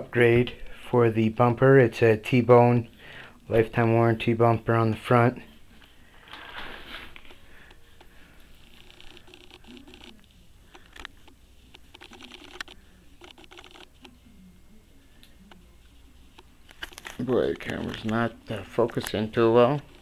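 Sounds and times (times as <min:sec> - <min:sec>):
camera handling rustling: 0:16.7 - 0:18.2.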